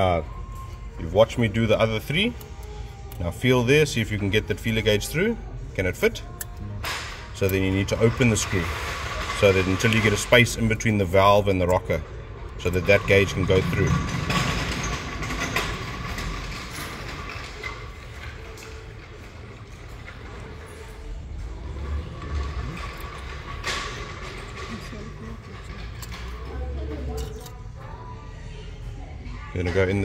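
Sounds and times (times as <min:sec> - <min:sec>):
indistinct voices: 0:00.0 - 0:30.0.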